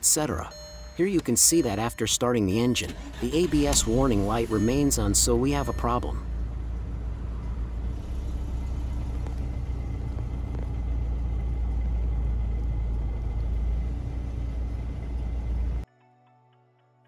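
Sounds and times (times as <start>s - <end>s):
car engine idling: 2.4s - 15.8s.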